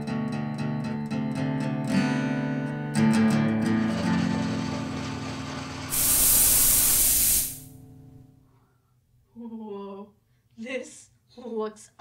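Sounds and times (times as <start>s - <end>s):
steam hissing: 5.9s - 7.7s.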